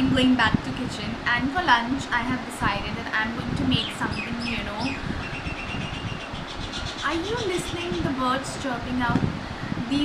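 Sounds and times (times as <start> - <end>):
birds chirping: 3.3 - 8.9.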